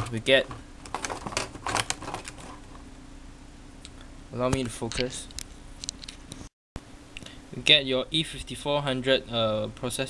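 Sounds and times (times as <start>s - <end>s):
steady low hum: 0.0s - 10.0s
plastic packaging crackle: 0.3s - 2.7s.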